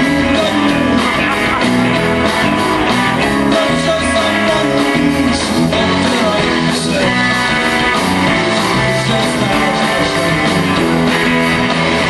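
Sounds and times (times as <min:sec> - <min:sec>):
live rock band playing: 0:00.0 - 0:12.0.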